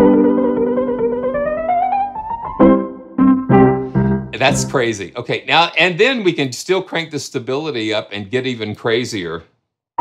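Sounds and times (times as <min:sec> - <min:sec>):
lo-fi piano chords: 0:00.0 - 0:05.0.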